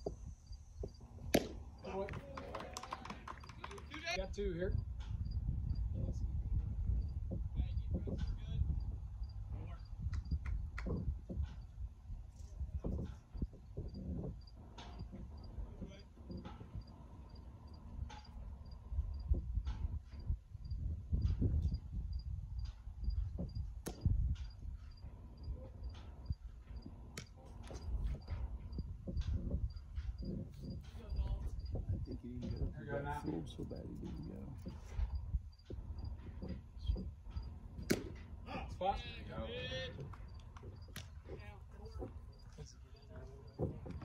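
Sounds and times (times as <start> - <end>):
insect chirping: 0.0 - 1.1, 13.8 - 19.4, 21.7 - 23.8, 27.8 - 32.8, 33.5 - 37.5, 41.8 - 44.0
wind rumbling on microphone: 0.0 - 44.0
sharp crack: 1.3 - 2.0, 37.8 - 38.2.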